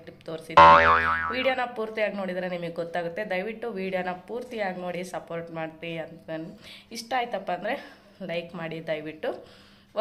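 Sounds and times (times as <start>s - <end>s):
cartoon boing sound effect: 0.6s - 1.6s.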